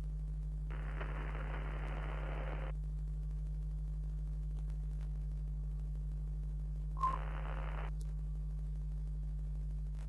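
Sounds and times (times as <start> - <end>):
low electrical hum: 0.0 - 10.0
burst of noise: 0.7 - 2.7
short beep: 7.0 - 7.3.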